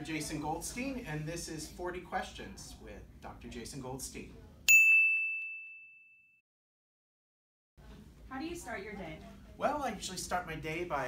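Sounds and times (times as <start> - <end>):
high bell-like ding: 4.7 - 6.4.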